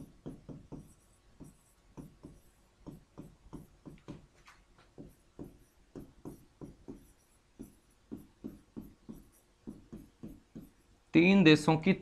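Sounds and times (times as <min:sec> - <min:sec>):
pen scratching on smartboard: 0:00.0 - 0:11.0.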